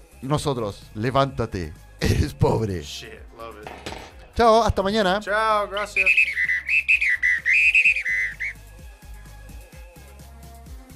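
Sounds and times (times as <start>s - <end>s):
background music with low beat: 0.0s - 10.9s
whistled tune: 5.7s - 8.7s.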